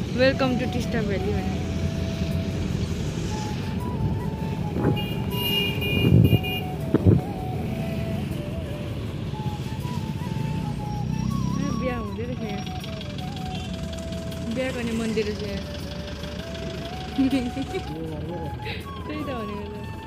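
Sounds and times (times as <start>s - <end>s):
background music: 0.0s - 20.0s
vehicle rumble in traffic: 0.0s - 20.0s.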